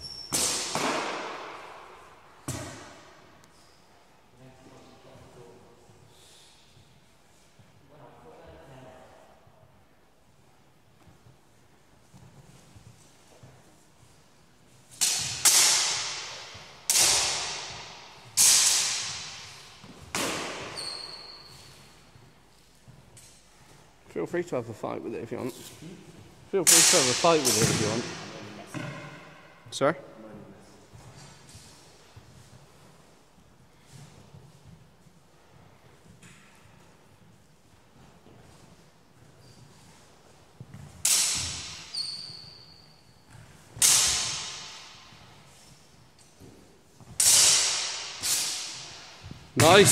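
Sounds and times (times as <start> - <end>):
sword blades clashing: 15.0 - 19.4, 26.7 - 27.7, 47.2 - 49.0.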